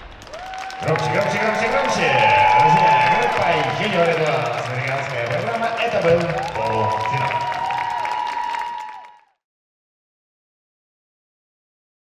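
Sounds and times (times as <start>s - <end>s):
audience applause: 0.0s - 9.4s
man announcing over public address: 0.8s - 7.8s.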